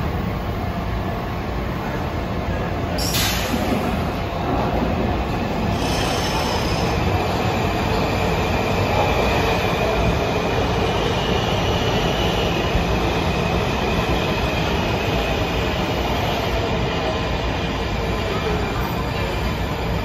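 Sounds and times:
train rumbling in station: 0.0 - 20.0.

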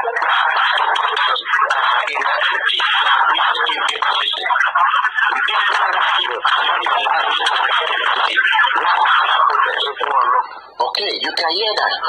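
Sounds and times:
thin unclear recorded voices: 0.0 - 12.0.

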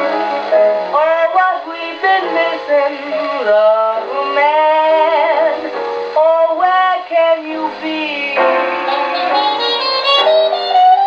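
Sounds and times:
woman singing: 0.0 - 9.7.

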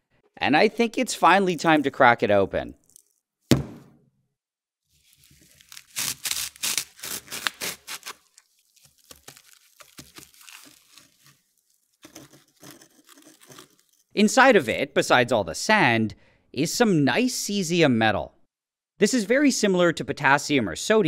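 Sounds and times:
sharp thump: 3.5 - 4.0
plastic tearing and crinkling: 5.0 - 14.1.

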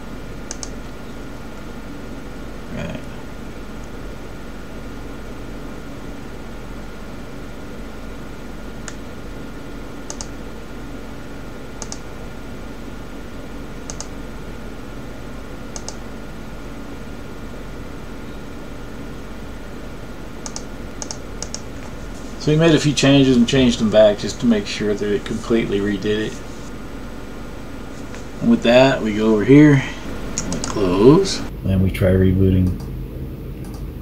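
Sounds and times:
background hum: 0.0 - 34.0
computer mouse clicking: 0.5 - 0.8, 8.8 - 9.0, 10.0 - 10.4, 11.8 - 12.1, 13.8 - 14.2, 15.7 - 16.0, 20.4 - 21.9, 30.3 - 30.8.

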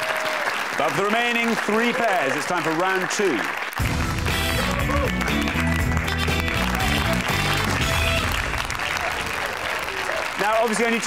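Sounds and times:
studio audience applause: 0.0 - 11.0
steady bass line: 3.8 - 8.8.

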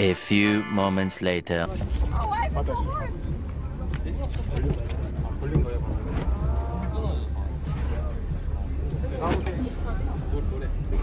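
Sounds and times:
faint voices talking: 0.0 - 11.0
boat engine rumble: 1.7 - 11.0.

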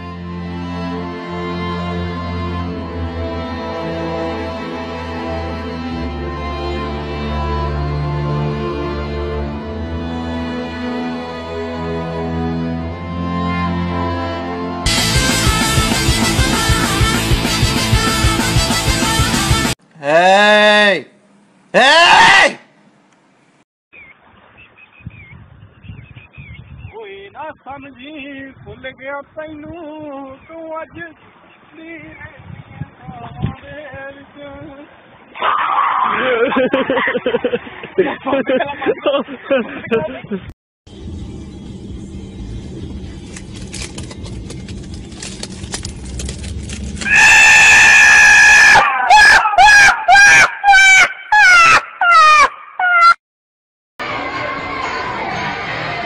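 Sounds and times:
small birds chirping: 23.9 - 28.2
low rumbling and thumps: 40.9 - 47.1
donkey braying: 47.0 - 53.2.

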